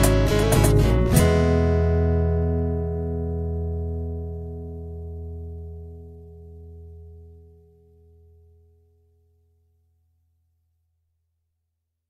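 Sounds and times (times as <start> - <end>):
guitar chord ringing out: 0.0 - 9.2.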